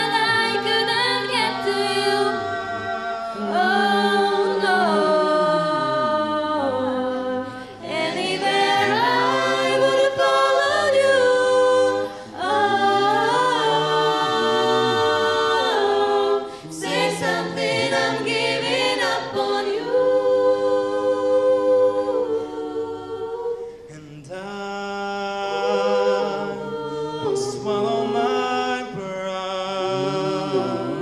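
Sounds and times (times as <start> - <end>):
a cappella group singing in harmony: 0.0 - 31.0.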